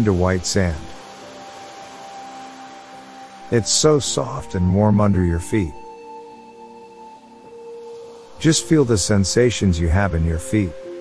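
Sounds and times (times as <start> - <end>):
ambient meditation music: 0.0 - 11.0
faint hiss: 0.0 - 11.0.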